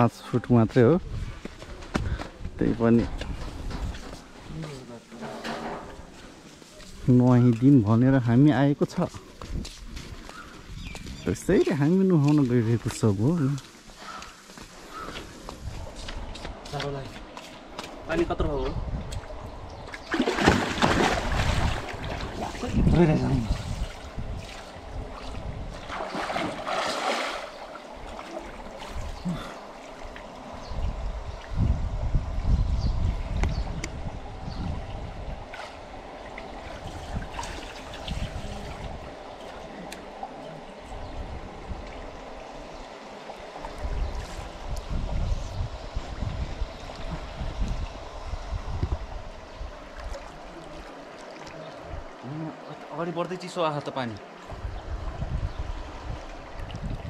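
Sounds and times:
water sloshing and lapping: 0:19.0 - 0:30.6, 0:35.2 - 0:41.0, 0:49.7 - 0:54.6, 0:55.8 - 0:57.0.

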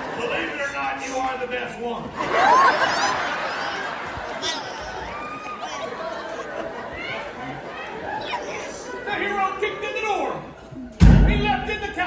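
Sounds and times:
indistinct chatter of voices: 0:02.1 - 0:11.0.

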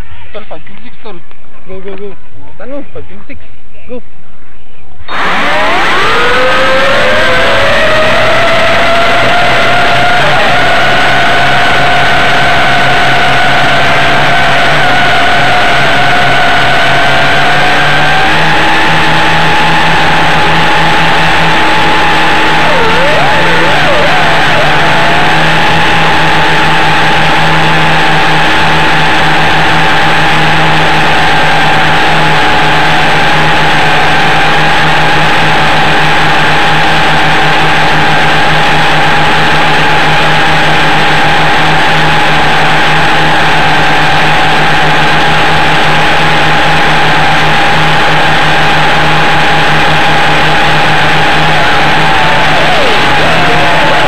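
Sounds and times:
quadcopter motors whining: 0:05.1 - 0:54.0.

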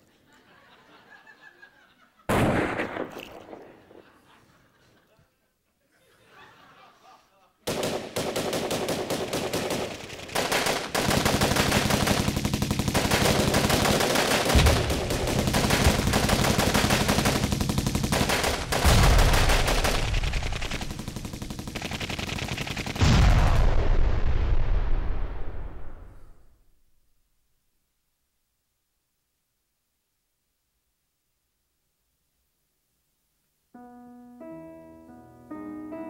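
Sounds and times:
rapid machine-gun fire: 0:07.7 - 0:24.0
heavy deep blasts: 0:14.5 - 0:21.2, 0:22.9 - 0:26.2.

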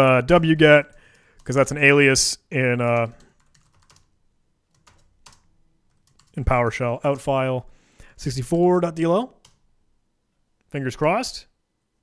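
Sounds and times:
soft computer keyboard typing: 0:02.8 - 0:04.1, 0:04.7 - 0:06.4, 0:09.4 - 0:09.6.

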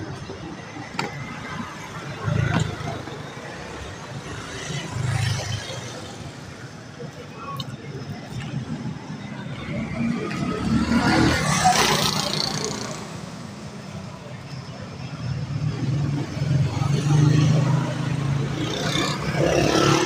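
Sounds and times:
people's voices: 0:00.0 - 0:20.0.

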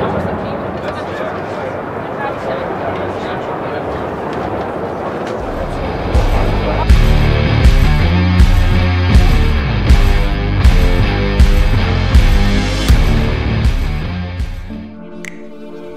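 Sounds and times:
crowd chatter: 0:00.0 - 0:07.8
guitar rock music: 0:05.4 - 0:15.9.

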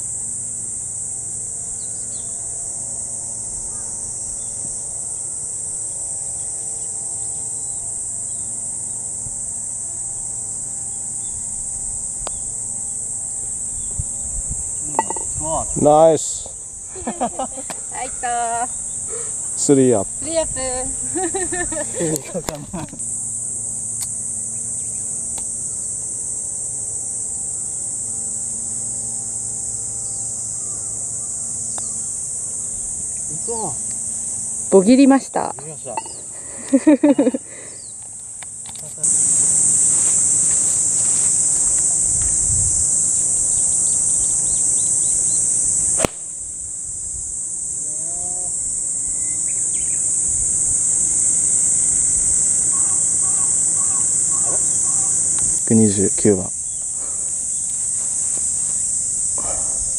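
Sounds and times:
high-pitched insect chorus: 0:00.0 - 0:59.9
sharp click: 0:46.0 - 0:46.3.

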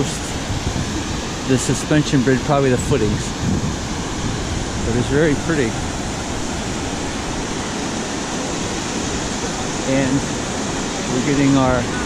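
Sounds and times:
river rapids rushing over rocks: 0:00.0 - 0:12.0.

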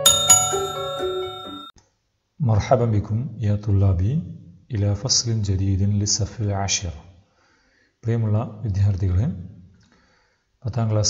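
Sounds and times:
bright bell-like chime: 0:00.0 - 0:01.7
short music jingle: 0:00.0 - 0:01.7.

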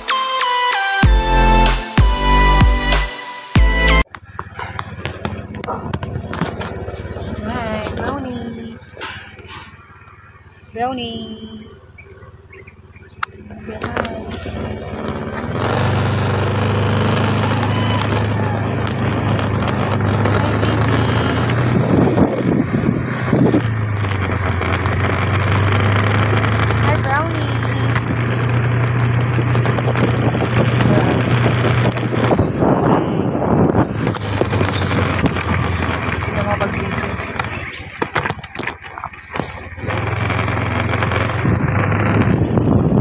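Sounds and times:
vehicle engine hum: 0:00.0 - 0:00.3, 0:01.0 - 0:43.0
wind rushing over microphone: 0:17.5 - 0:24.8, 0:27.7 - 0:40.0, 0:41.1 - 0:43.0.

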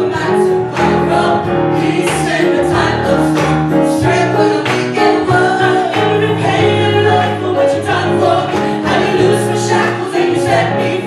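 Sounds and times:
band with drum kit: 0:00.0 - 0:11.0
gospel group singing: 0:00.0 - 0:11.0.

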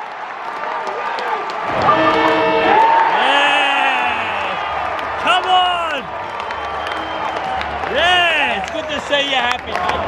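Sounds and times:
stadium crowd cheering: 0:00.0 - 0:10.0
men yelling: 0:03.0 - 0:06.0.

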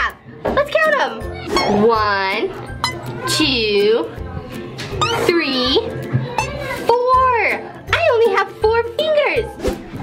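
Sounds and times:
children's music: 0:00.0 - 0:10.0.

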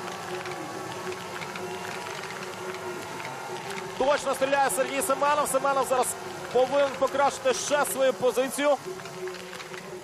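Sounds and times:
outdoor crowd and course noise: 0:00.0 - 0:10.0.

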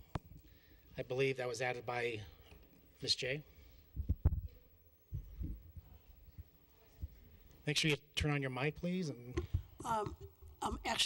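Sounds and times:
faint room hum: 0:00.0 - 0:11.0
microphone handling thumps: 0:04.0 - 0:04.5.

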